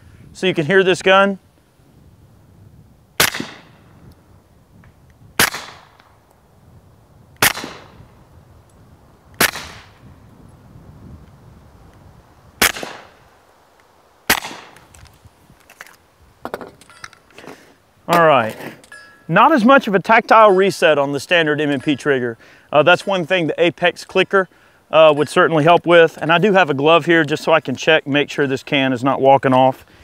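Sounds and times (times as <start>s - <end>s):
suppressed pistol shots: 3.2s - 3.8s, 5.4s - 6.1s, 7.4s - 8.0s, 9.4s - 10.0s, 12.6s - 13.2s, 14.3s - 14.8s.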